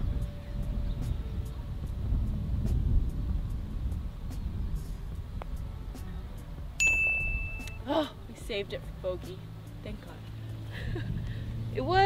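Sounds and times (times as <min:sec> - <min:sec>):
wind rumble on microphone: 0:00.0 - 0:12.0
bright ringing tone: 0:06.8 - 0:07.9.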